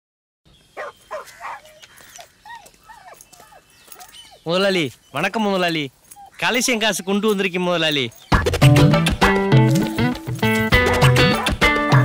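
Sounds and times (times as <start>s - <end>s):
dog barking: 0.8s - 1.8s, 11.2s - 12.0s.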